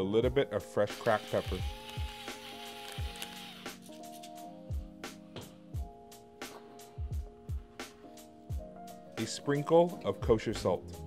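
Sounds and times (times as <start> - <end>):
soft kick drum beat: 7.0 - 7.8.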